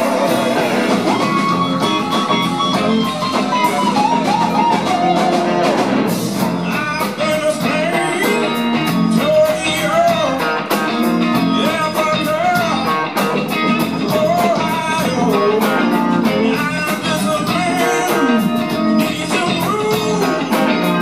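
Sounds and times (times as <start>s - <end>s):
drums and cymbals: 0.0s - 21.0s
electric guitars: 0.0s - 21.0s
man singing: 6.5s - 21.0s.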